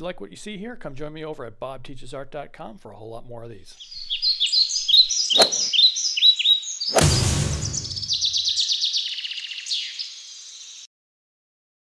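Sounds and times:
songbirds chirping and trilling: 3.6 - 10.9
whoosh and low boom: 7.0 - 8.4.

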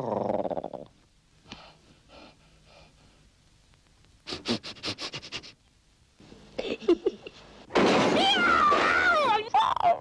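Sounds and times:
crockery crashing: 7.7 - 9.5.

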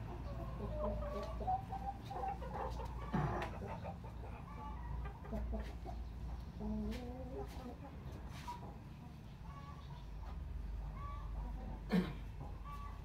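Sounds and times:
chickens clucking: 0.0 - 13.0.

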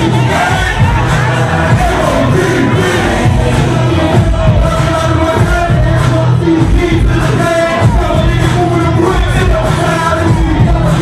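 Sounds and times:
crowd shouting: 0.0 - 11.0
loud hip-hop music: 0.0 - 11.0.

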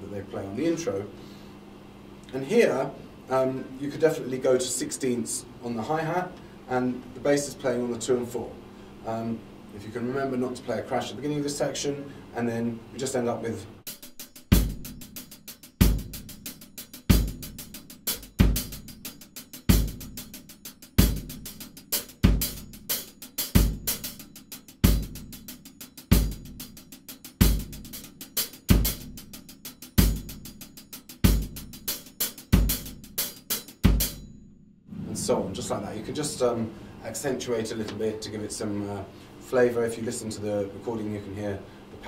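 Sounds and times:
drum kit disco groove: 13.9 - 34.2
hi-hat sixteenth notes: 13.9 - 34.2.

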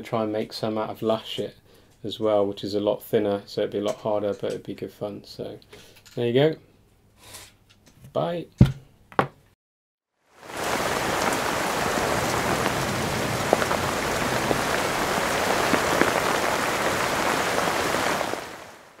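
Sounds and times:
rain-like hiss: 10.2 - 19.0
faint crackles: 10.4 - 19.0.

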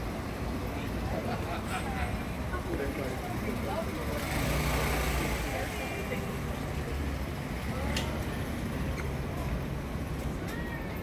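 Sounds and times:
people talking on street: 0.0 - 11.0.

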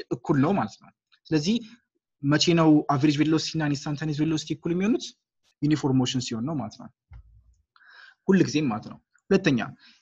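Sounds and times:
man speaking: 0.0 - 7.0, 8.2 - 9.8.

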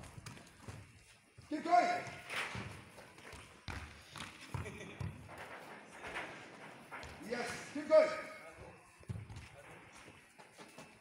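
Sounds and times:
person shouting a call: 1.5 - 2.0.

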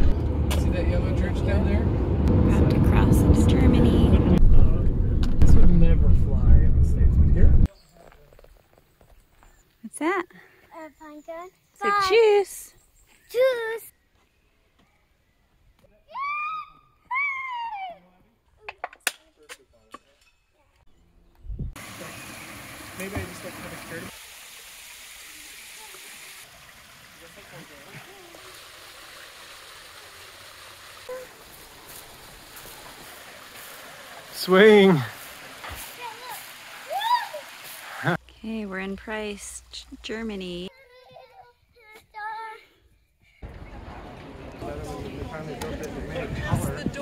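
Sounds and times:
child calling out: 16.1 - 18.0, 31.1 - 31.4, 36.0 - 37.5
small waterfall rushing: 21.8 - 38.2.

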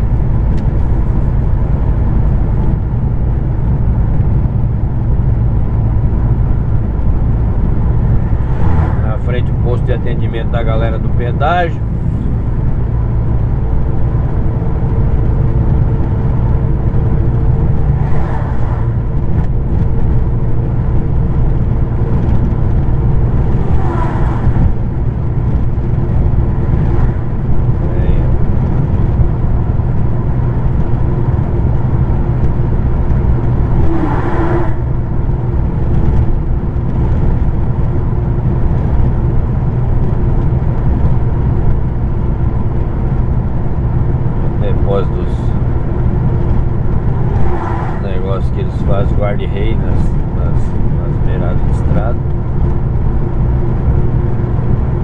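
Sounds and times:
truck engine drone and road noise: 0.0 - 55.0.

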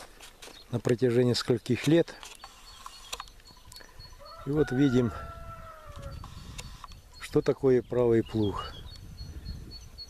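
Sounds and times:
rooster crowing: 4.1 - 6.2.

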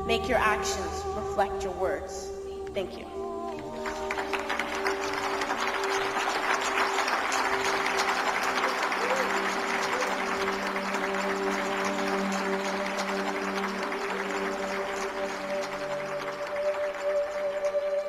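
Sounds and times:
soft music with long held notes: 0.0 - 18.0
audience applauding: 3.5 - 18.0.

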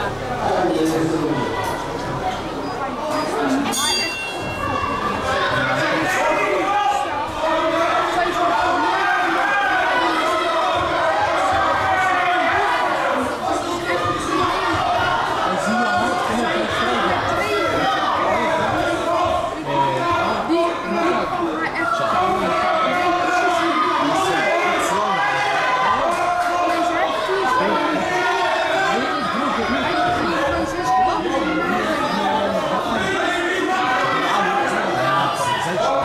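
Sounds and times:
crowd talking and calling out: 0.0 - 36.0.

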